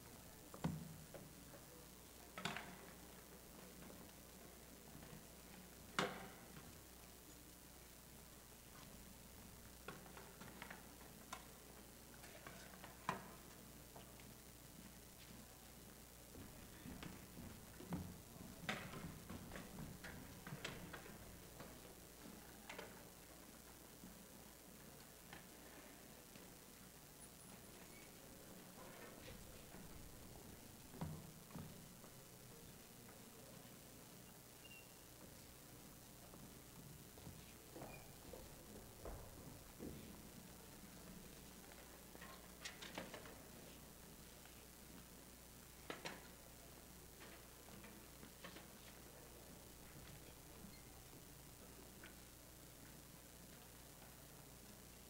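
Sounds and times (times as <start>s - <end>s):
quiet hall noise: 0.0s - 55.0s
footsteps on a stage: 8.6s - 27.0s, 27.6s - 33.6s, 35.2s - 45.1s.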